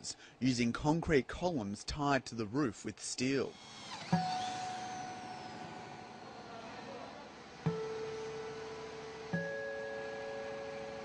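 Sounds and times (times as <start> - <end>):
clear ringing tone: 4.1 - 11.0.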